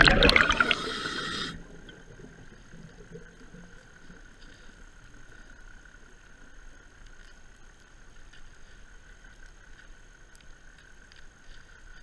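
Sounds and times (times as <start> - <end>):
air bubbles rushing underwater: 0.0 - 4.2
faint low underwater hum: 0.0 - 12.0.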